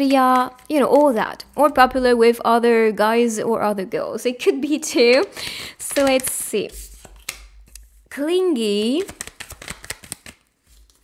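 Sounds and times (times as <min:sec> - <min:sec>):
deck of cards shuffling: 0:05.0 - 0:11.0.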